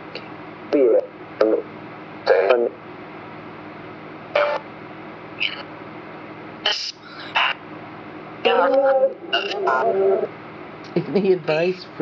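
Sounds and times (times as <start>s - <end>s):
chopped voice fragments: 6.7s - 7.6s, 8.5s - 10.0s.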